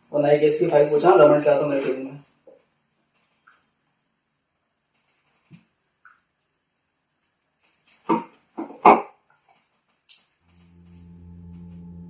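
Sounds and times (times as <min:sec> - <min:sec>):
dog barking: 0:08.1 - 0:09.2.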